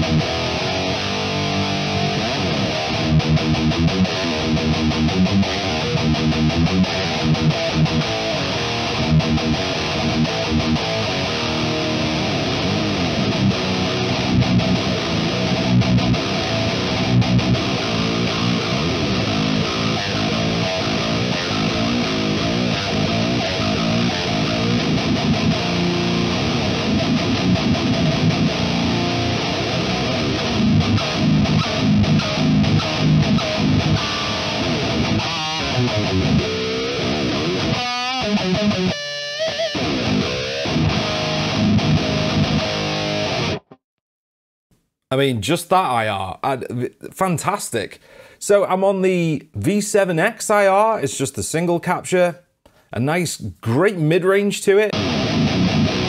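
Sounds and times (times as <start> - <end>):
distorted electric guitar riff: 0.0 - 43.8, 54.8 - 56.0.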